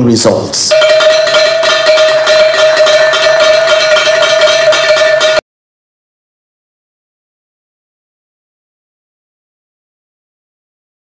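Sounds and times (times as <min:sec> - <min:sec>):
bell ringing rapidly: 0:00.7 - 0:05.4.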